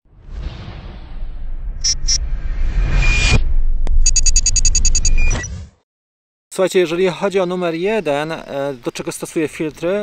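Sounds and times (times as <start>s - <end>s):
low rumble: 0.0s - 5.3s.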